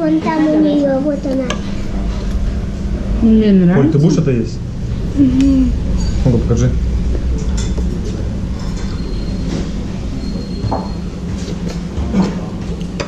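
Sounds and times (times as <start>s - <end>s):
low room hum and rumble: 0.0s - 13.0s.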